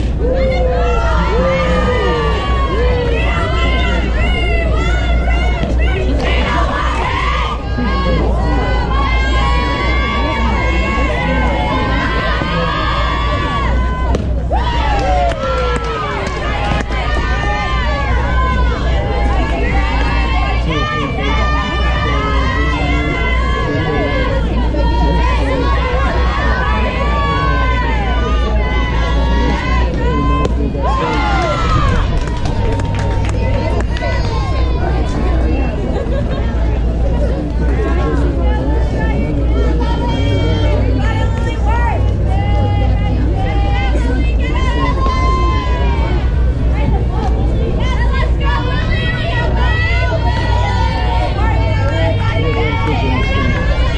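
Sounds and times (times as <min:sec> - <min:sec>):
people calling and shouting: 0:00.0 - 0:53.9
steady low rumble: 0:00.0 - 0:53.9.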